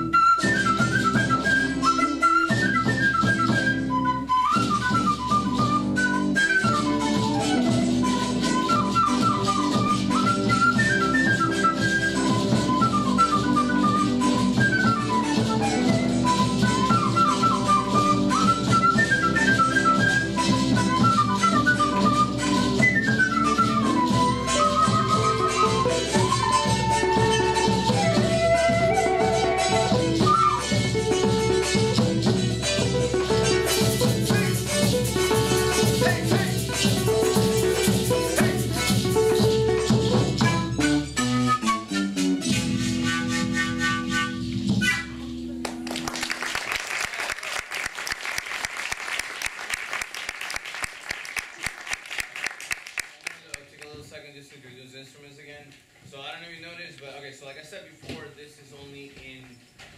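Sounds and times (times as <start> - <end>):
flute melody: 0.0 - 46.6
strummed strings: 29.8 - 40.8.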